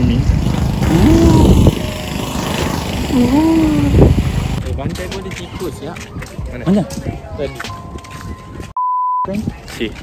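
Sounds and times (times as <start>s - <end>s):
small petrol engine running: 0.1s - 4.6s
person speaking: 3.1s - 4.1s.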